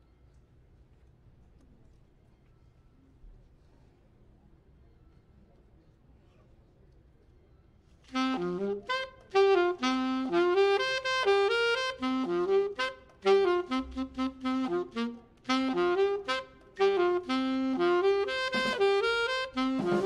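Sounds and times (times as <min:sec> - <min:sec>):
jazz saxophone: 0:08.1 - 0:20.0.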